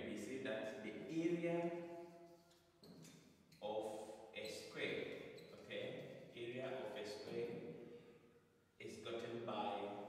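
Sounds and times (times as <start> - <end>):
man speaking: 0.0 - 1.8, 3.6 - 7.6, 8.8 - 10.0.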